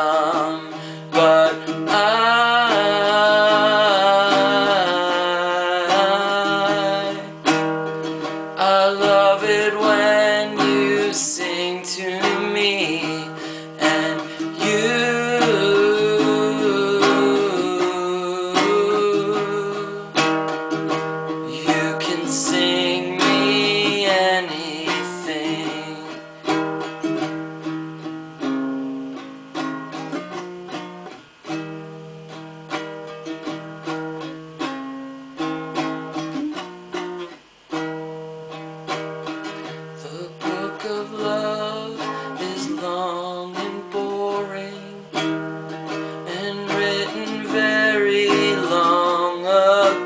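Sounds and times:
man singing: 0.0s - 27.3s, 39.6s - 50.0s
ukulele strumming chords: 0.0s - 50.0s.

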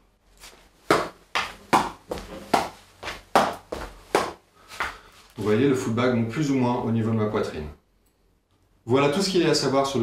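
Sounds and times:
footsteps on wooden floor: 0.4s - 5.5s.

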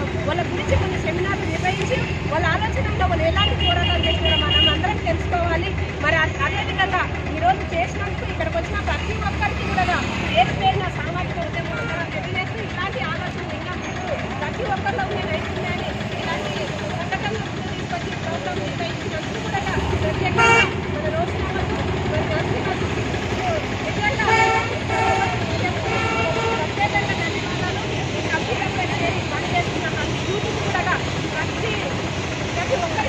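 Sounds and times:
indistinct chatter of people: 0.0s - 33.0s
passing traffic: 0.0s - 33.0s
vehicle horn toot: 20.4s - 20.7s.

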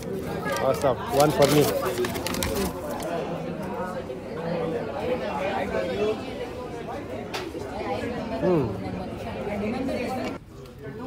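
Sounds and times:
paper bag crackling: 0.0s - 3.1s
background chatter of voices: 0.0s - 11.0s.

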